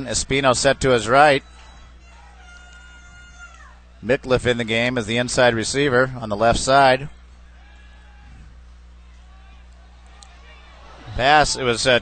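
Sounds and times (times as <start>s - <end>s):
distant drawn-out shout: 0.0s - 4.0s, 7.4s - 12.0s
steady low hum: 0.0s - 12.0s.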